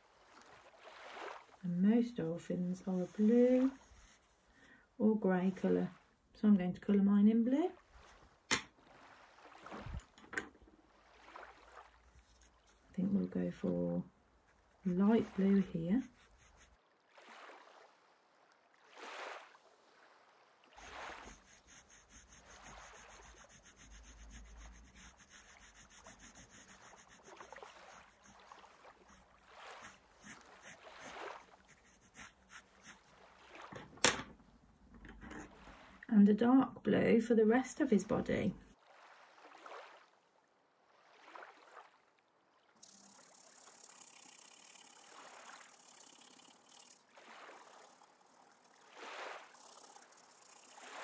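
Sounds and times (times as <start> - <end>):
pencil scratching on paper: 1.5 - 4.4, 14.8 - 16.8, 20.8 - 33.1, 49.5 - 50.9.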